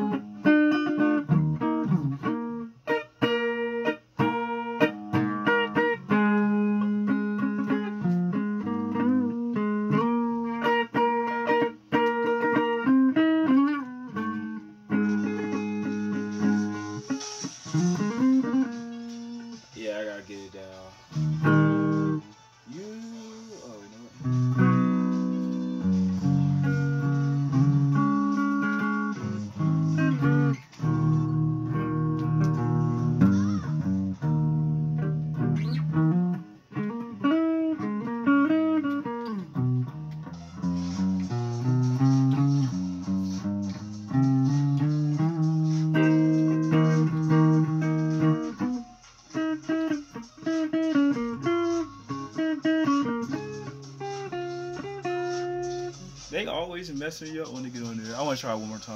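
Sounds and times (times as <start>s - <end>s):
electric guitar melody: 0.0s - 58.9s.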